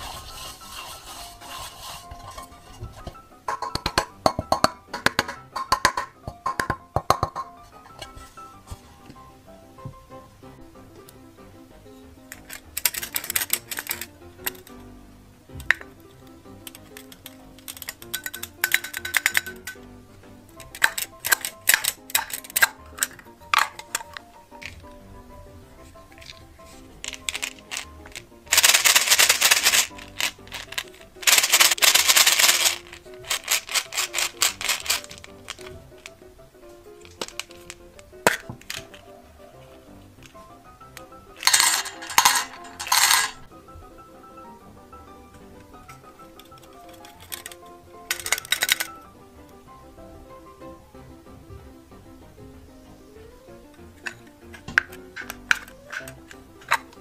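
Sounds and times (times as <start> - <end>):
soft background music: 0.0 - 57.0
plastic toy pieces clattering: 12.3 - 14.8, 15.6 - 19.9, 20.5 - 25.0, 26.0 - 36.2, 37.0 - 39.2, 40.2 - 43.5, 45.9 - 49.0, 54.0 - 57.0.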